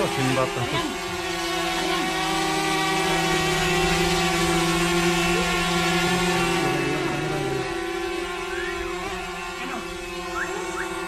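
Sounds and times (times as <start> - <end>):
drone propellers whining: 0.0 - 11.0.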